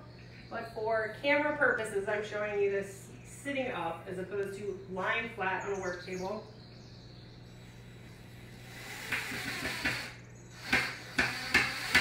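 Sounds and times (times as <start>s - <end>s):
cordless drill whirring: 8.2s - 12.0s
sharp knocks: 9.1s - 12.0s.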